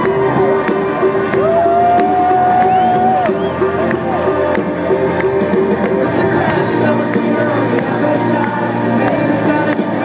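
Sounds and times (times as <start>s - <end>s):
strummed electric guitars: 0.0s - 10.0s.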